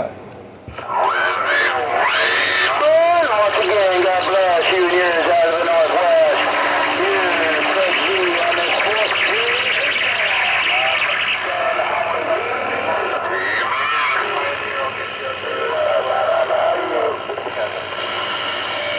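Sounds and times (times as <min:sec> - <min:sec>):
radio static hiss: 0:00.7 - 0:18.9
unintelligible voices over radio: 0:00.7 - 0:18.9.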